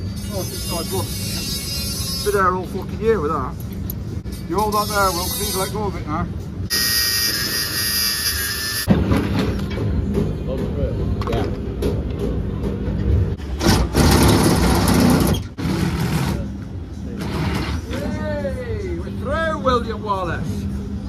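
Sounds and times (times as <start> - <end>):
angle grinder on steel: 6.7 - 8.9.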